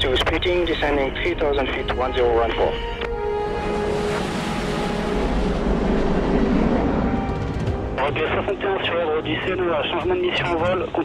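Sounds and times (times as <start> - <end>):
background music drone: 0.0 - 11.0
deep rumble: 0.0 - 11.0
fighter jet engine noise: 0.0 - 11.0.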